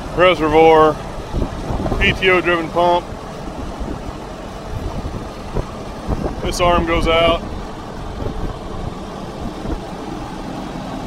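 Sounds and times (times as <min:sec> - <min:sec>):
tractor engine running: 0:00.0 - 0:11.0.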